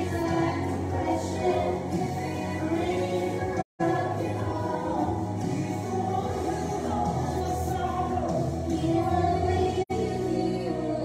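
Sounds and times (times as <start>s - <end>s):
musical accompaniment: 0.0s - 11.0s
women and girl singing gospel: 0.0s - 11.0s.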